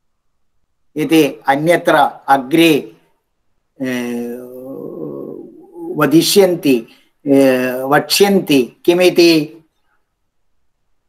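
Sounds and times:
man holding long vowel: 3.8s - 6.6s.

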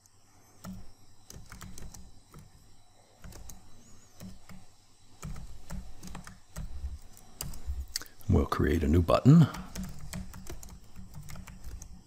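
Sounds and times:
computer keyboard typing: 0.6s - 2.6s, 3.2s - 8.1s, 9.4s - 12.0s.

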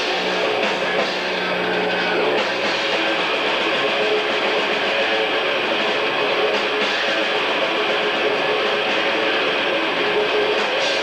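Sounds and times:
bass guitar: 0.0s - 11.0s
distorted electric guitars: 0.0s - 11.0s
drums: 0.0s - 11.0s.

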